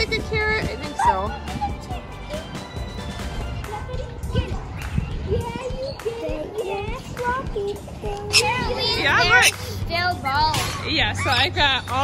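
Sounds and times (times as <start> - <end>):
children chattering and calling out: 0.0 - 11.6.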